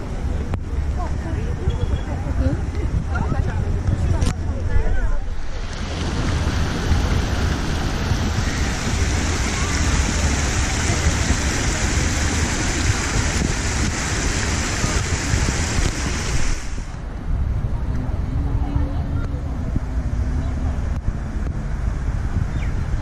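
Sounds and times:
fountain jets splashing water: 5.4 - 17.0.

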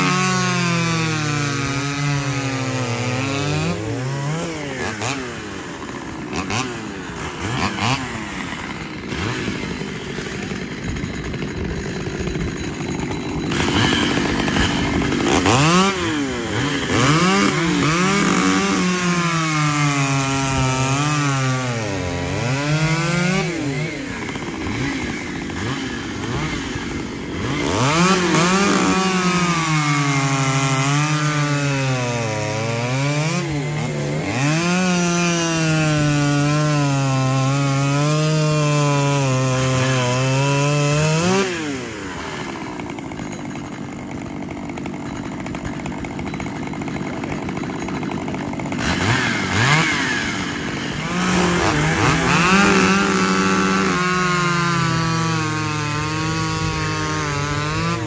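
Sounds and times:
chainsaws cutting log: 0.0 - 58.0.

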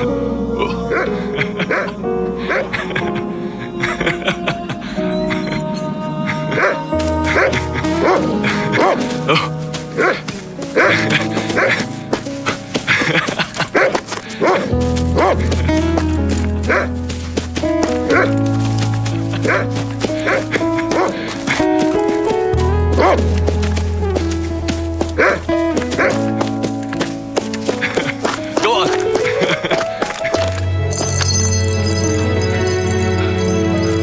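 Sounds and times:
film score music: 0.0 - 34.0
dog barking: 0.9 - 2.8, 6.5 - 15.8, 16.6 - 17.0, 17.8 - 18.5, 19.2 - 21.7, 22.9 - 23.5, 25.2 - 26.4.

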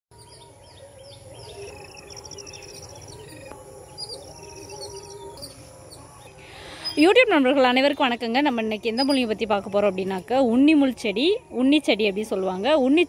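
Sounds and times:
birds chirping: 0.1 - 13.0
rapid high bird trill: 0.2 - 7.4.

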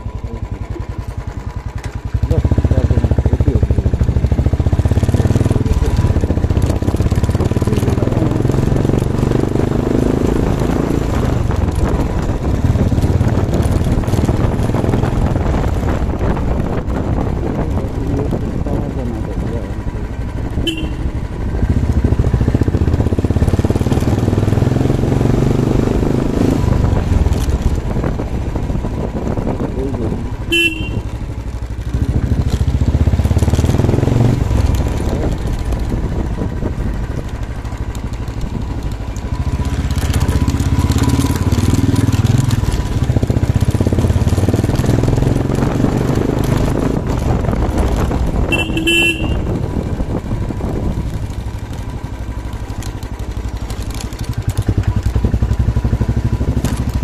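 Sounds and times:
motorcycle engine revving: 0.0 - 57.0
short horn beeps: 20.6 - 21.1, 30.5 - 31.1, 48.5 - 49.5.

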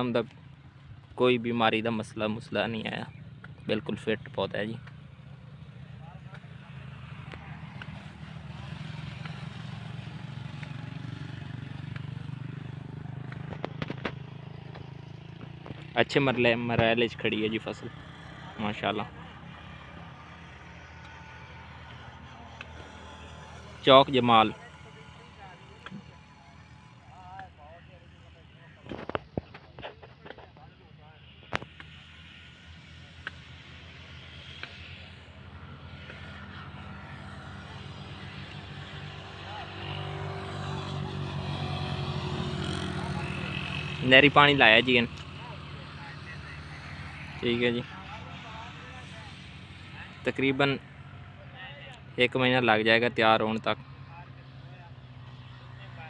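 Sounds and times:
engine droning: 0.0 - 56.0.

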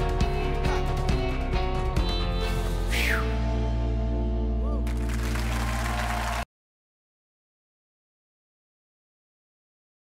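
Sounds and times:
audience applause: 4.8 - 6.5.

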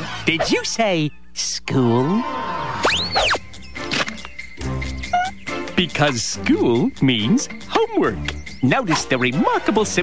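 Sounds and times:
cartoon swooping squeal: 2.3 - 3.4.

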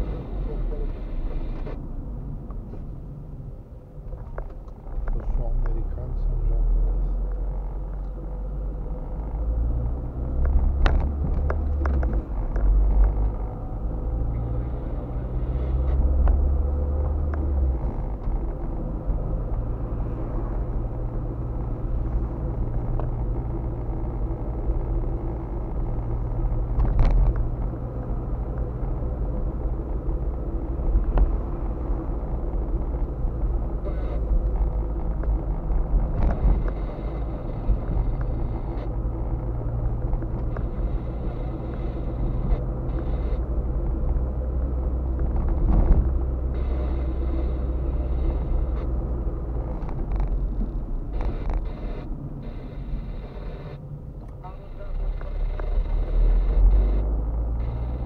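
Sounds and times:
car engine and road noise: 0.0 - 58.0.

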